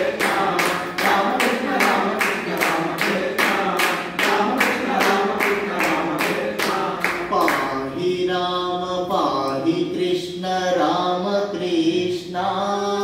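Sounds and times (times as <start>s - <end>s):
steady hand clapping: 0.0s - 7.8s
man singing devotional song: 0.0s - 13.0s.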